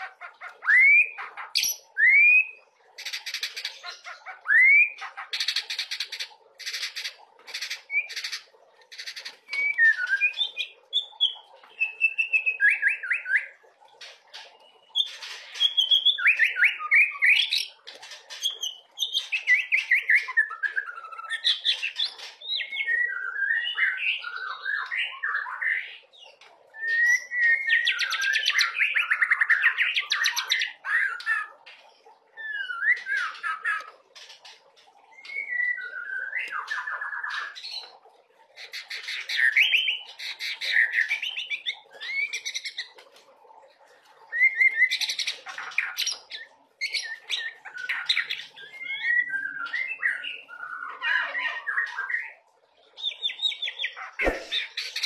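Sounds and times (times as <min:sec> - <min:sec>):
bird singing trills and whistles: 0:00.0 - 0:13.6, 0:14.3 - 0:31.5, 0:32.4 - 0:34.4, 0:35.1 - 0:38.0, 0:38.6 - 0:43.0, 0:44.2 - 0:52.4, 0:53.0 - 0:55.0.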